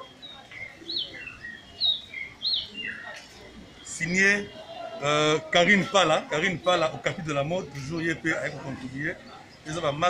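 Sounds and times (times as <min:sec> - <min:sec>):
faint sweeping bird calls: 0:00.0 - 0:05.1.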